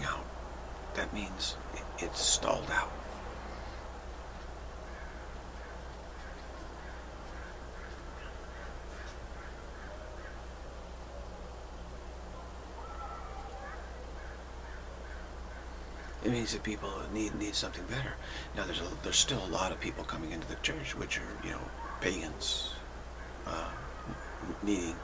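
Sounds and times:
background hiss: 0.0 - 25.0
faint short animal calls: 12.4 - 16.2.

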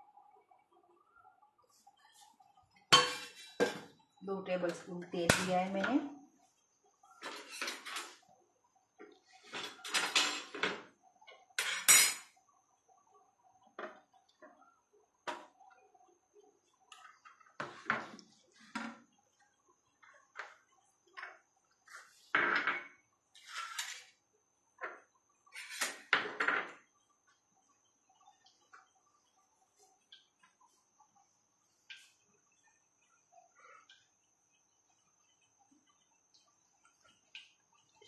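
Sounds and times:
kitchen utensils and pots clattering: 2.9 - 4.0, 7.2 - 8.2, 9.4 - 10.9, 11.6 - 12.4, 22.4 - 24.2, 24.8 - 26.8.

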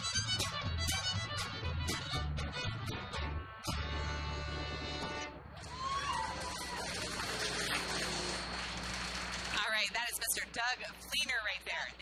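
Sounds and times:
fiddle: 0.0 - 3.1
upright bass: 0.0 - 5.5
applause: 5.6 - 9.8.

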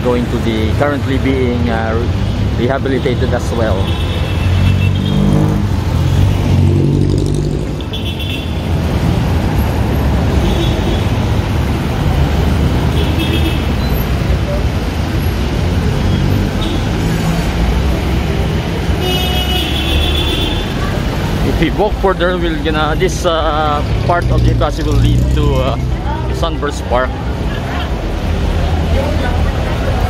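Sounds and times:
traffic rumble: 0.0 - 30.0
vehicle passing close: 4.5 - 7.9.

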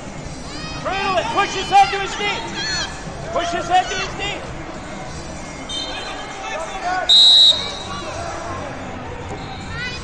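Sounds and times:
murmur of voices in a hall: 0.0 - 10.0
referee's whistle blast: 7.1 - 8.0.

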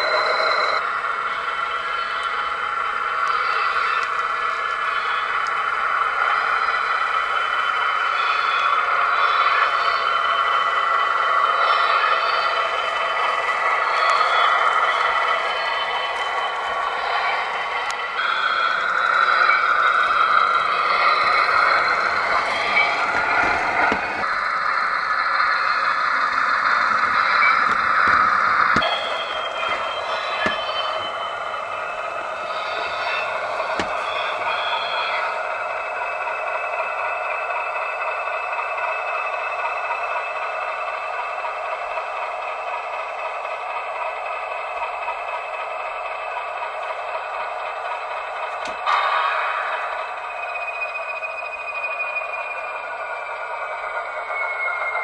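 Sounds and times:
tinny model locomotive engine drone: 0.0 - 55.0.

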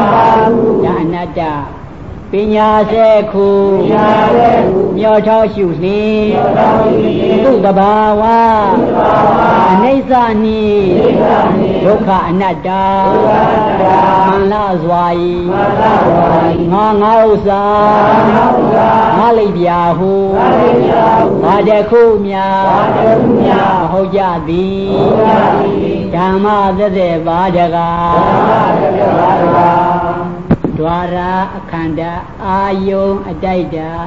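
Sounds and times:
man chanting: 0.0 - 34.0.

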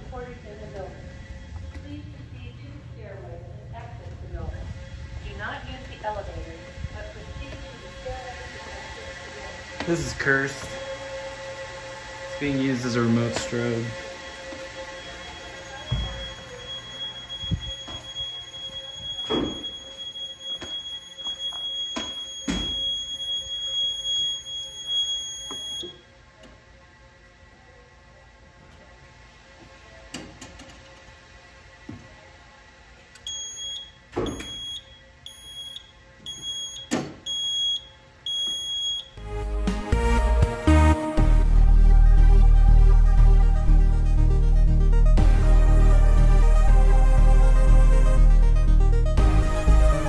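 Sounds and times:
low hum: 0.0 - 21.0, 39.2 - 50.0
fire alarm tone: 10.1 - 26.1, 33.2 - 39.3
electronic music: 39.2 - 50.0.

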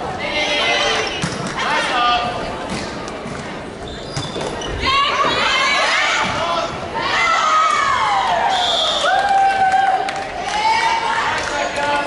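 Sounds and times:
women shouting and cheering: 4.8 - 11.5.

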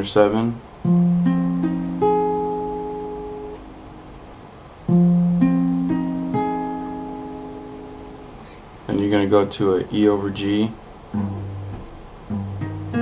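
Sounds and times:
acoustic guitar arpeggio: 0.8 - 8.6, 11.1 - 13.0.

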